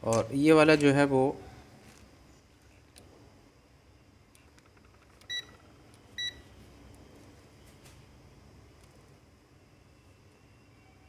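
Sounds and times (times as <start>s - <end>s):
multimeter high beeps: 5.3s - 6.5s.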